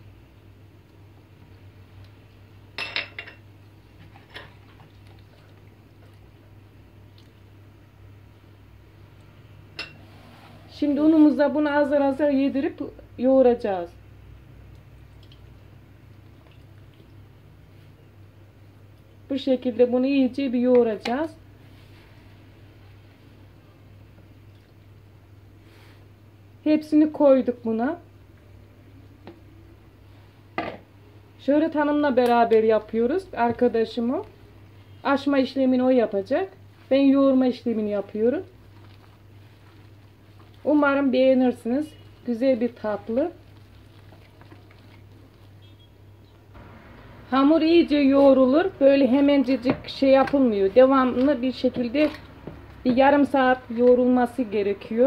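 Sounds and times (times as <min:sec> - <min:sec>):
low steady hum: 0:00.0 - 0:55.0
dough being kneaded in a bowl: 0:36.3 - 0:45.8, 0:47.3 - 0:55.0
stirring liquid in plastic bowl: 0:38.5 - 0:40.7, 0:43.1 - 0:45.8.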